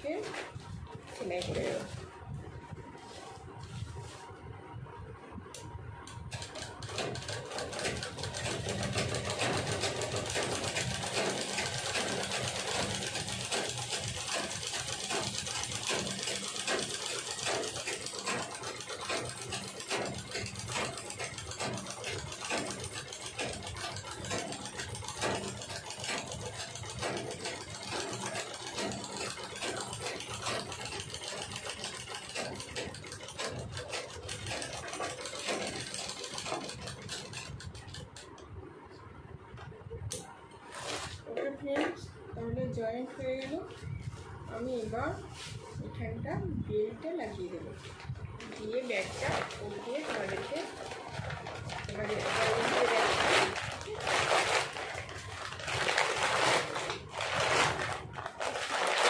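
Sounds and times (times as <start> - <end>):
sewing machine stitching: 6.0 - 38.4, 48.4 - 59.0.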